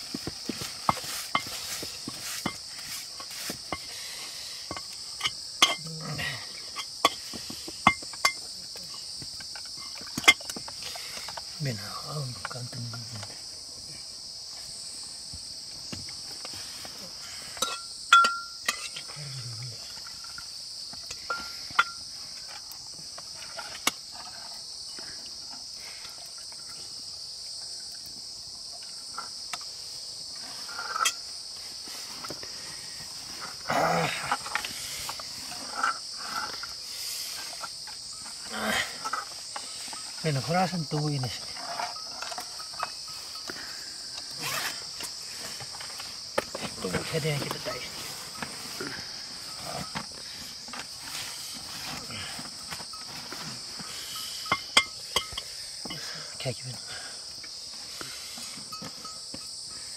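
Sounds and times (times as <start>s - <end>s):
insects chirring: 0.0s - 59.9s
utensils clinking against pots: 4.7s - 5.9s, 17.6s - 19.1s.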